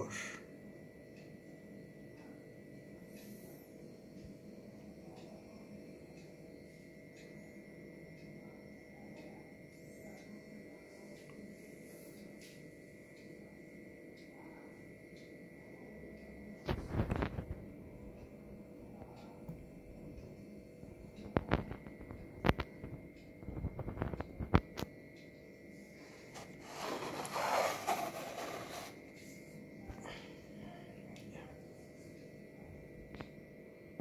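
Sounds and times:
electrical hum: 0.0 - 34.0.

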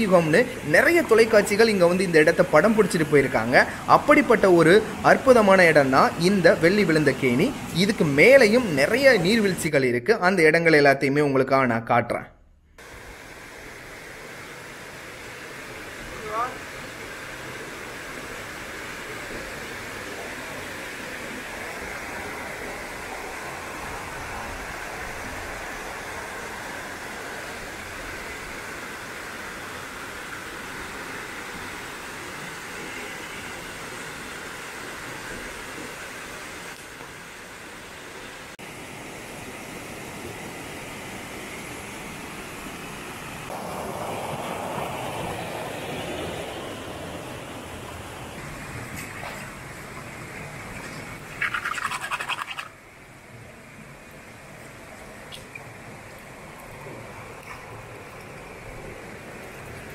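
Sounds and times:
waterfall pouring into pool: 0.0 - 9.8, 12.8 - 59.9
stream running over rocks: 0.0 - 9.9, 12.8 - 59.9.

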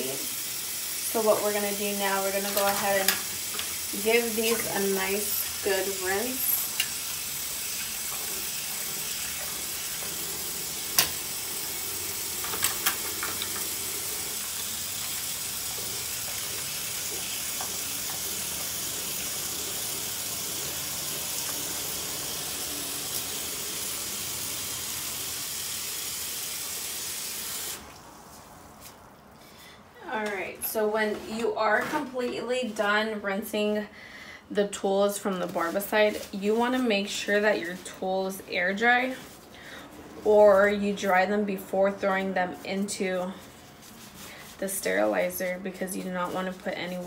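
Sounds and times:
tap water running into sink: 0.3 - 28.0.

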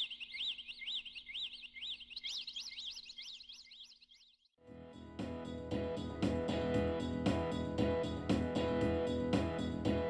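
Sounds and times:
songbirds singing: 0.0 - 4.6.

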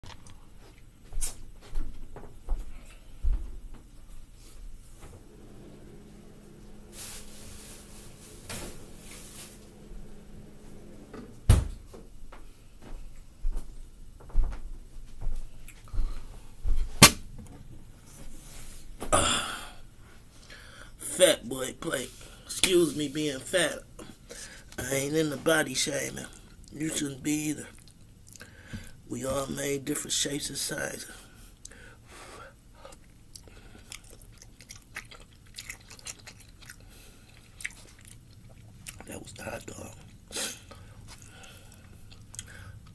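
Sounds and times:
person chewing food: 0.0 - 1.0, 27.7 - 29.0, 32.5 - 42.9
loud thump: 11.1 - 11.9.

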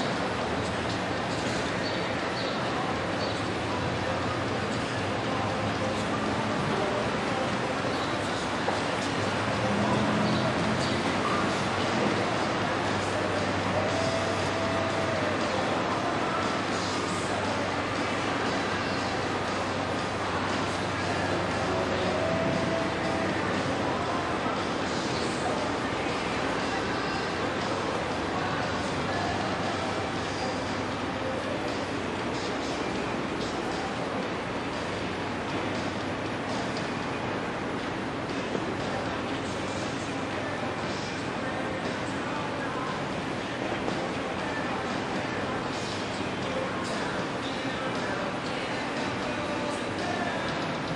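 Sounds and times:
rushing outdoor background noise: 0.0 - 50.9.

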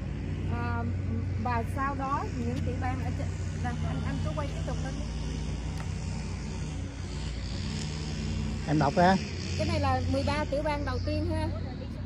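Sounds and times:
engine droning: 0.0 - 12.0.

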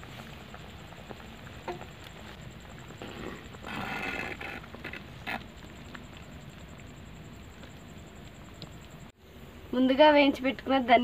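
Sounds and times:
metal spoon scraping clay pot: 3.0 - 5.5.

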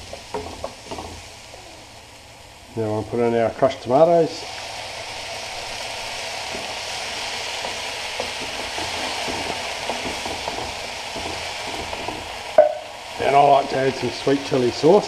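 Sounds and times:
tomatoes sizzling in a wok: 0.0 - 15.0
wooden spoon stirring and scraping: 6.4 - 12.5.

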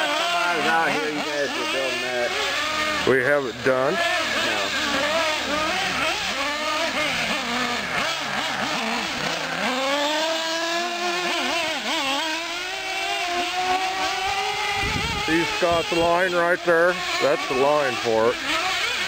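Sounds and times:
small nitro engines revving: 0.0 - 19.0.

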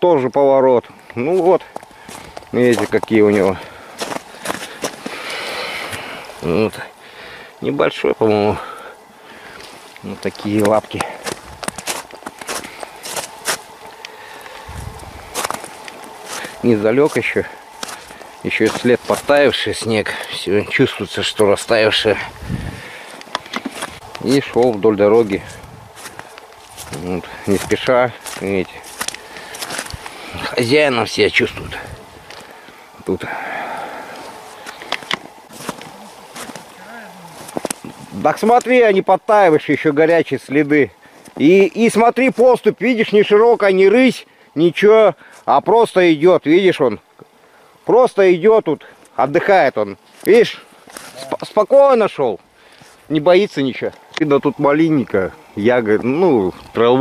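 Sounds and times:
faint muttering: 0.8 - 43.2, 47.0 - 57.0
footsteps crunching on snow: 1.2 - 6.8, 9.4 - 32.8, 33.9 - 38.8, 50.0 - 54.6.

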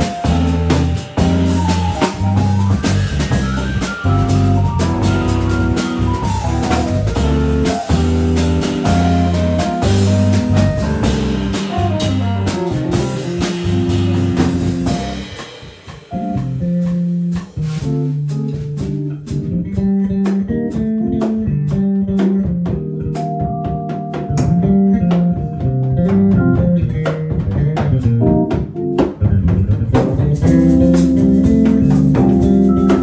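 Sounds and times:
electric piano chords: 0.0 - 29.2, 30.2 - 33.0
bass line: 0.0 - 33.0
drum kit hits: 0.0 - 33.0
jazz combo playing live: 0.0 - 33.0.

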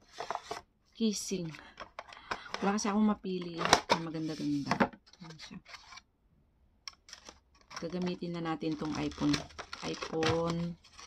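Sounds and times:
woman speaking: 1.0 - 1.8, 2.6 - 5.6, 7.8 - 10.8.

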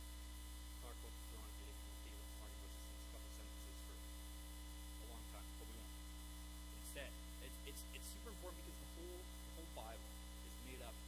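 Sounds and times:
electrical mains hum: 0.0 - 11.0
faint high steady tones: 0.0 - 11.0.

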